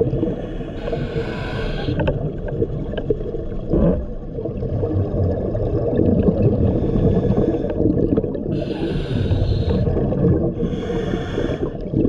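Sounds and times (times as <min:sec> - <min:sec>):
exhaled bubbles rumbling underwater: 0:00.0 - 0:12.0
regulator inhale hiss: 0:00.2 - 0:02.1, 0:06.8 - 0:07.8, 0:08.5 - 0:09.9, 0:10.6 - 0:11.8.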